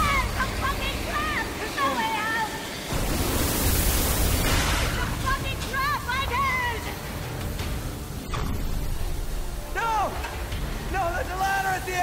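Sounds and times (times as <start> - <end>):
steam jets hissing: 0.0 - 12.0.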